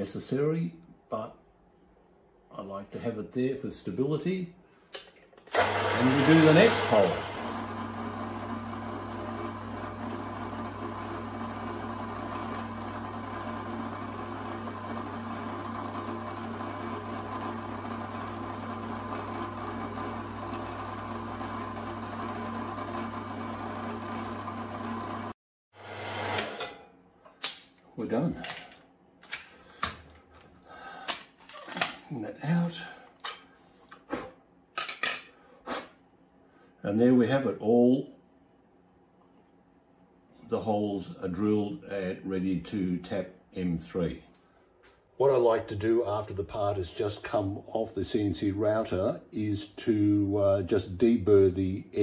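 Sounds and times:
router spindle motor humming: 5.5 - 26.7.

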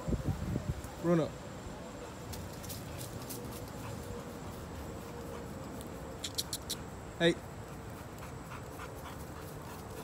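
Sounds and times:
dog rustling through hedge: 2.1 - 6.2.

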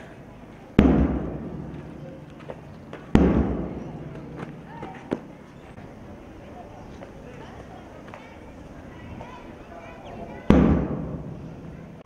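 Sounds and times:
loud booming thumps: 0.8 - 5.3, 10.4 - 11.8.

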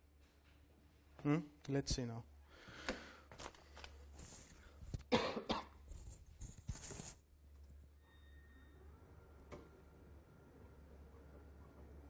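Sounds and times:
person coughing: 5.1 - 5.8.

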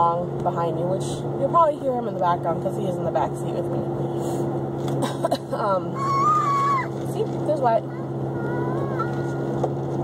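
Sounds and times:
car cabin hum: 4.8 - 10.0
toddler vocalizing: 6.0 - 6.9, 7.9 - 9.5.

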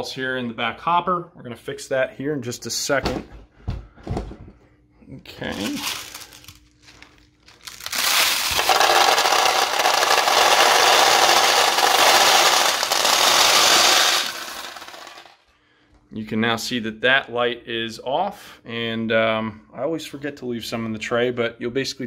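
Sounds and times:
metal balls pouring clatter: 7.6 - 15.4.

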